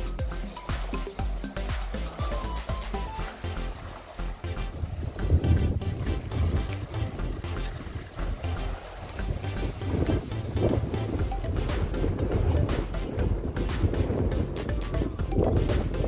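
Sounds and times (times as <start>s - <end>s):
wind buffeting microphone: 4.6s - 16.0s.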